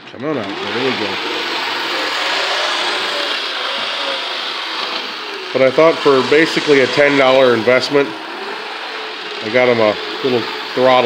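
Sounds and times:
model train motor whirring: 0:00.0 - 0:11.0.

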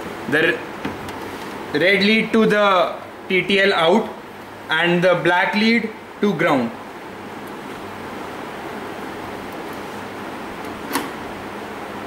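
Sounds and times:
steady background hiss: 0:00.0 - 0:12.0
sharp click: 0:10.6 - 0:11.2.

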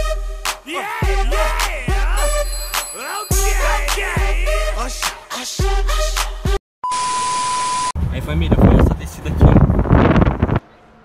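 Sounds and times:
test-tone beep: 0:02.2 - 0:03.7
wind on microphone: 0:08.0 - 0:10.6.

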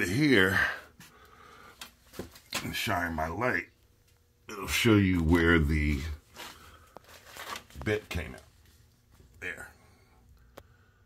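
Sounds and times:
man talking: 0:00.0 - 0:00.9, 0:02.5 - 0:03.7, 0:04.5 - 0:06.2, 0:07.7 - 0:08.5, 0:09.4 - 0:09.8
rustling handling noise: 0:01.7 - 0:02.9, 0:05.1 - 0:09.6.

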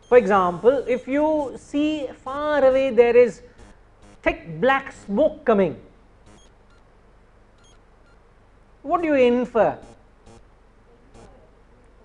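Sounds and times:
faint high-pitched beeps: 0:00.0 - 0:04.4, 0:06.2 - 0:06.9, 0:07.6 - 0:08.2, 0:11.1 - 0:11.4.

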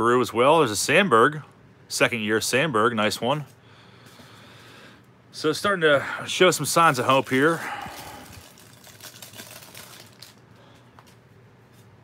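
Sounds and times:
cellophane wrapper crinkling: 0:06.7 - 0:12.0.

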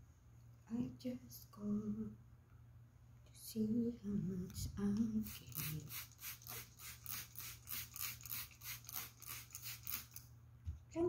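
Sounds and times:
spray bottle squirts: 0:05.3 - 0:10.2.

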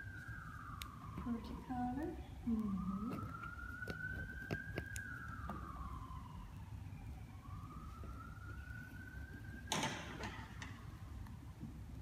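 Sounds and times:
emergency vehicle siren wailing: 0:00.0 - 0:12.0.

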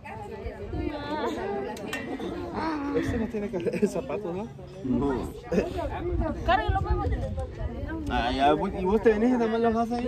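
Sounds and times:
wind rumbling on microphone: 0:00.0 - 0:01.4, 0:04.9 - 0:10.0.

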